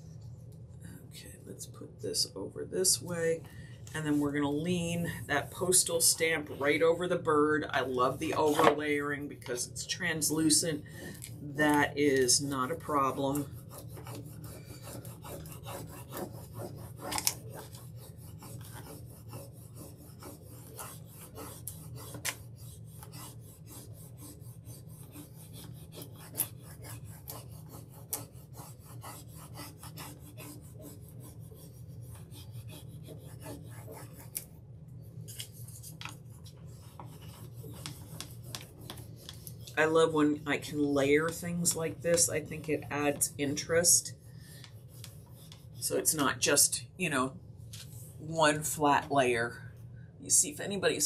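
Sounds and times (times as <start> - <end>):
steady low hum: 0.0 - 51.0
scratchy rubbing on wood: 12.3 - 34.4, 35.6 - 39.8, 44.6 - 45.9.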